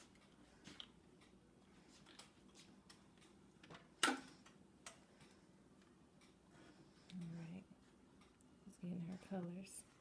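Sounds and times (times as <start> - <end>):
faint light ticking: 0.0 - 10.0.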